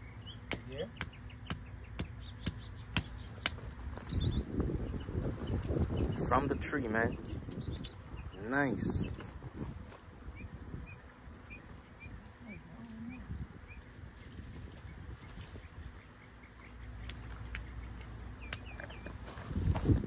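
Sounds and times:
small bird chirping: 0.0 - 9.4, 10.2 - 14.0, 14.7 - 19.2.

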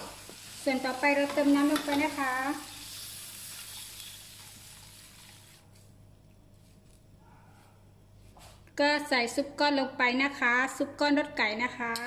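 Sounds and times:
water pouring into sizzling wok: 2.2 - 5.6.

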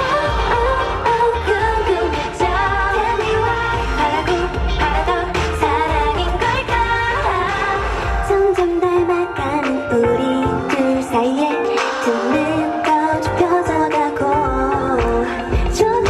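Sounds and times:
pulsing bass beat: 0.0 - 8.3
women singing pop song: 0.0 - 16.0.

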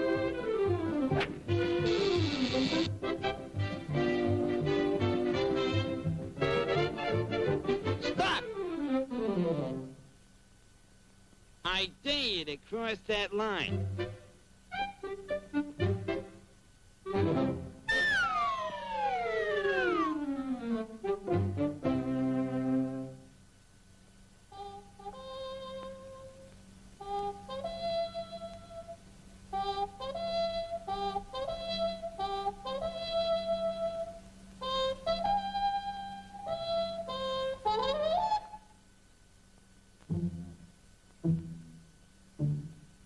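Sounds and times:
cartoon descending whistle: 17.9 - 20.3
solo wind instrument tune: 24.5 - 38.7.

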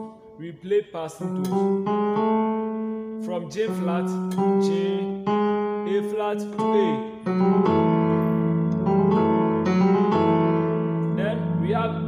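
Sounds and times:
electronic keyboard piano chord: 0.0 - 12.0.

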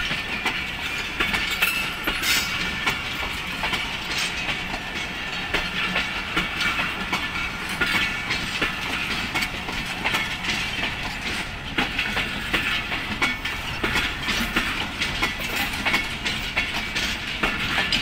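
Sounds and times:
train rumble and rail noise: 0.0 - 18.0
train wheels clicking over rail joints: 0.0 - 18.0.

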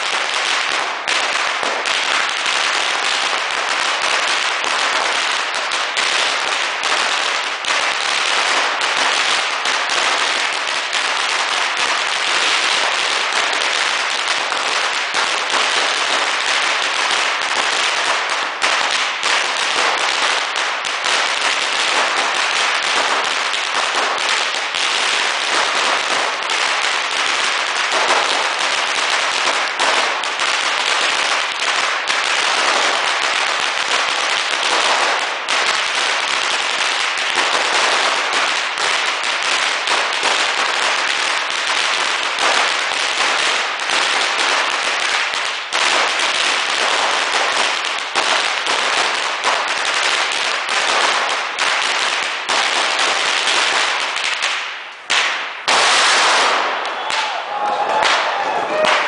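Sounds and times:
firecrackers crackling: 0.0 - 59.0.

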